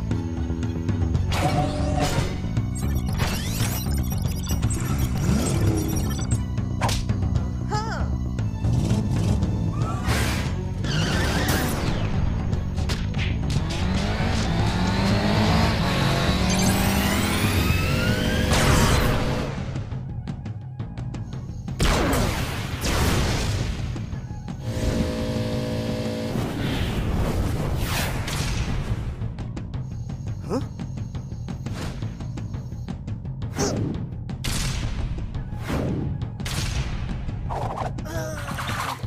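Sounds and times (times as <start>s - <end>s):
cartoon action music: 1.2s - 19.9s
motorbike engine whine: 13.4s - 19.8s, 24.4s - 26.7s.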